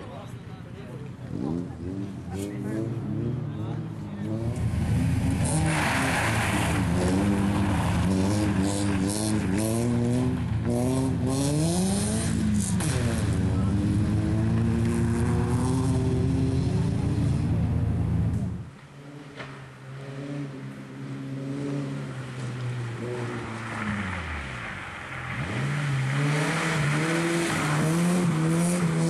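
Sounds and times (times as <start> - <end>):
rally car engine revving: 1.2 - 29.0.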